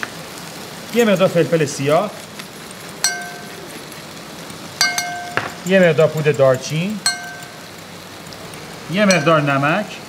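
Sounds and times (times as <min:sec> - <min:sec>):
chicken frying in a pan: 0:00.0 - 0:10.0
metal utensil clinking bowl: 0:03.0 - 0:09.7.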